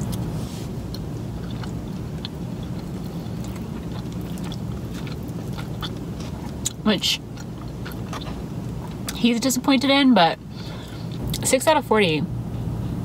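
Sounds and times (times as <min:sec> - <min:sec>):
wet chewing mouth clicks: 0:00.0 - 0:09.2
low car cabin hum: 0:00.0 - 0:13.0.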